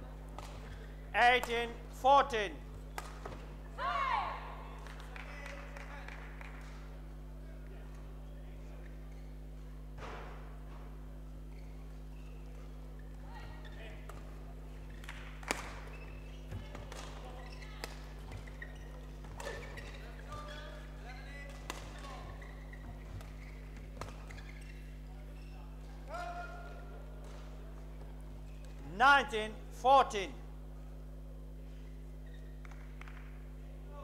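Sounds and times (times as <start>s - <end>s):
steady low hum: 0.0s - 34.0s
shoes squeaking on court: 0.4s - 1.1s, 10.6s - 26.1s, 27.2s - 28.9s, 31.0s - 33.6s.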